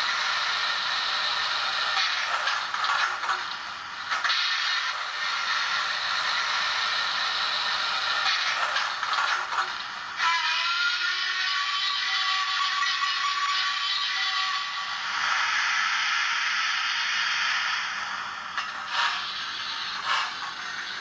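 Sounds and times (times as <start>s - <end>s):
steam locomotive chuffs: 0.0s - 21.0s
steam hiss: 3.7s - 10.3s, 13.2s - 21.0s.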